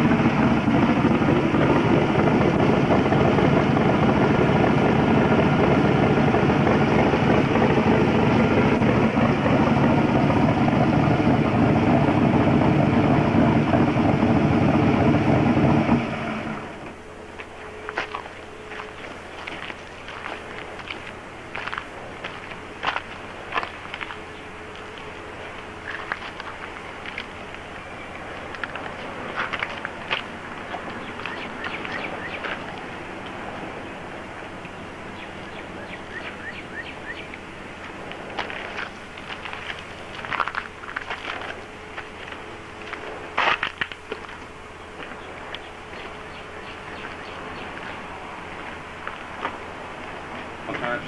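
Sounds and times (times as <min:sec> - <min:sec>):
faint hum: 0:16.4 - 0:51.0.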